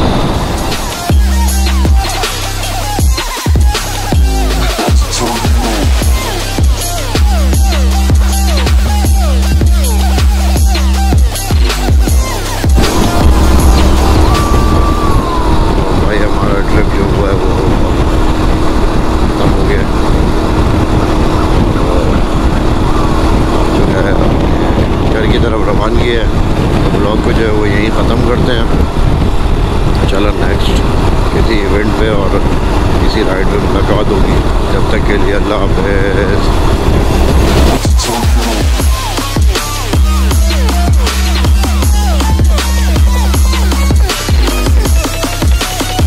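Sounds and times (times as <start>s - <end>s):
motorcycle running: 0.0s - 46.0s
wind rumble on microphone: 0.0s - 46.0s
indistinct voice: 37.8s - 39.2s.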